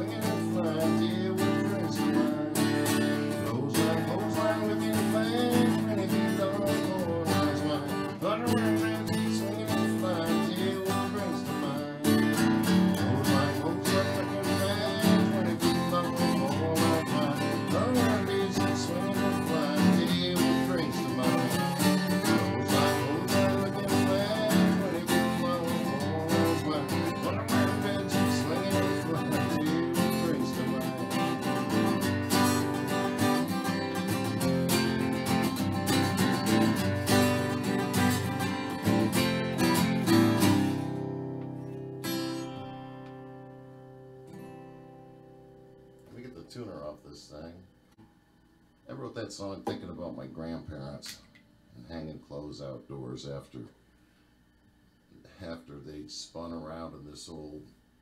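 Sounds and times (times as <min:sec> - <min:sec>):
acoustic guitar strumming: 0:00.0 - 0:46.9.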